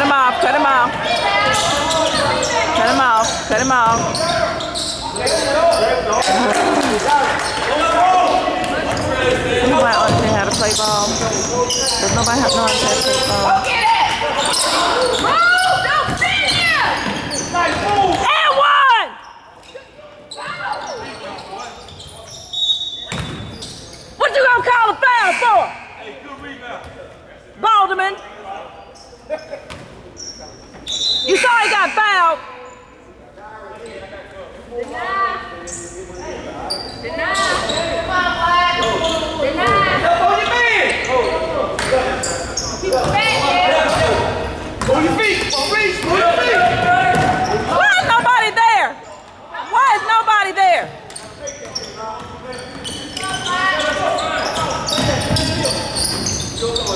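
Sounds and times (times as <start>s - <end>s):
people shouting: 13.4s - 17.0s, 17.8s - 19.2s, 46.1s - 48.9s.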